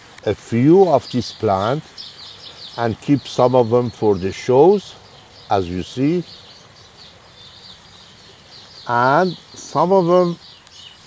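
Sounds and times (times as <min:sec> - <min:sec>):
man speaking: 0:00.2 - 0:01.9, 0:02.8 - 0:06.4, 0:08.8 - 0:10.4.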